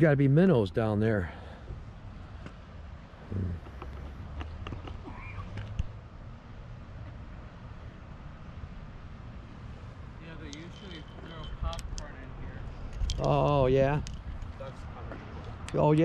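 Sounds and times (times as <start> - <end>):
distant road traffic rumble: 0.0 - 16.0.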